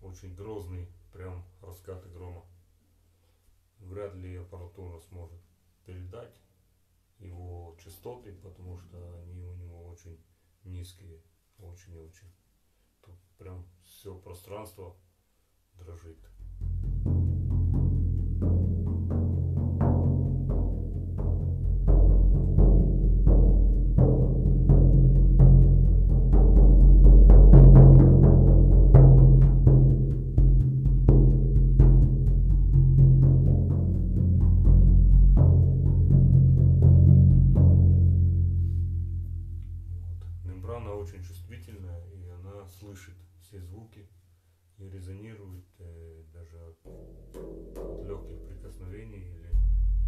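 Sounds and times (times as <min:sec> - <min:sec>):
frame drum booming: 0:16.2 - 0:41.1, 0:46.9 - 0:50.0.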